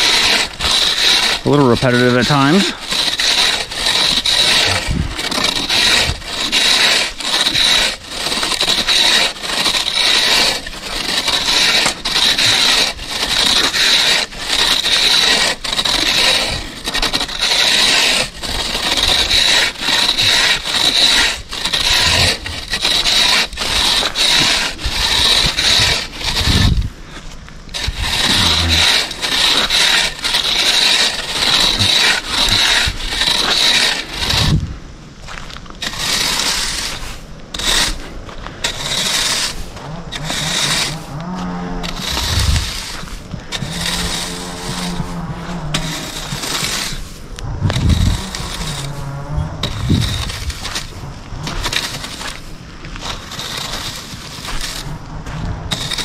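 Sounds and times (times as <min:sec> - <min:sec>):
metal rake scraping gravel: 0:00.0 - 0:56.0.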